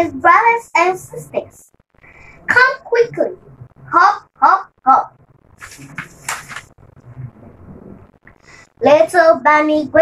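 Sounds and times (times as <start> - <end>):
paper page rustling: 5.6 - 6.7.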